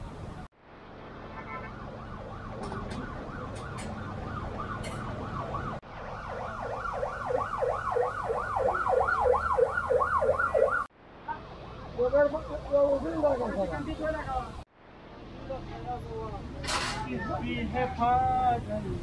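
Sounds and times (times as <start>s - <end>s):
electronic siren yelping: 1.8s - 10.9s.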